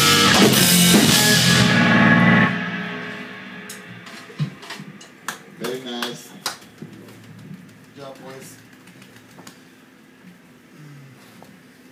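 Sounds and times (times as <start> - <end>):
electric guitar and bass chord: 0.0 - 5.0
drums and cymbals: 0.0 - 5.2.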